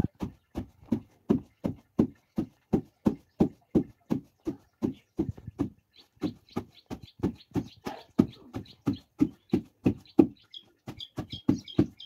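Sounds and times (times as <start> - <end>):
wooden pestle pounding in mortar: 6.3 - 10.4.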